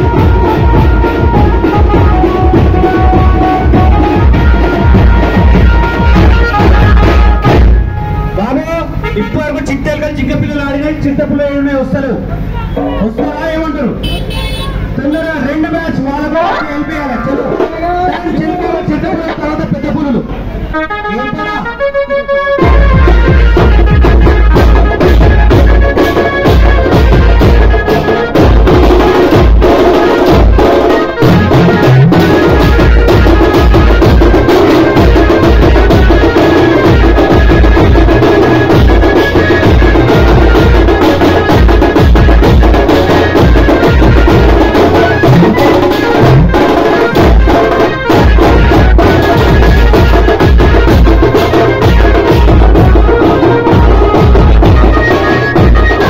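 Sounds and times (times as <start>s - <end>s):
booming bass beat: 0.0s - 11.5s, 12.4s - 56.0s
loud procession drumming: 0.0s - 56.0s.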